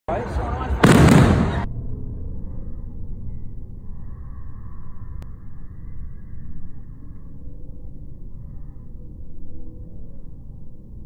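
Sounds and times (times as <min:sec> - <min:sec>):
people's voices: 0:00.1 - 0:01.7
dull low rumble: 0:00.7 - 0:11.0
firework shell bursting: 0:00.8 - 0:01.7.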